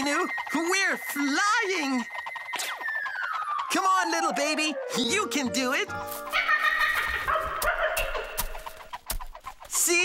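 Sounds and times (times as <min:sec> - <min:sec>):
cartoon chicken clucking: 0:00.0 - 0:04.5, 0:06.3 - 0:10.0.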